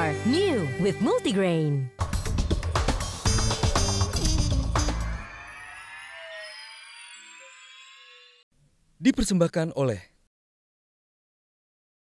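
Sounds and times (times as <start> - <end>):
tv theme music rising tones: 2.0 - 8.5.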